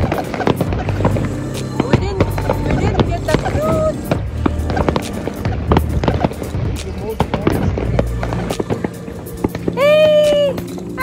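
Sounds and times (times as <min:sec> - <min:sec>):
fireworks bangs and crackles: 0:00.0 - 0:11.0.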